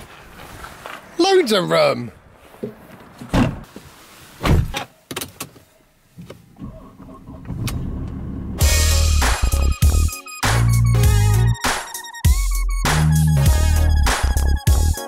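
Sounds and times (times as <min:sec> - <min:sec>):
car engine starting: 0:06.3 - 0:10.0
electronic music with heavy bass: 0:08.6 - 0:15.0.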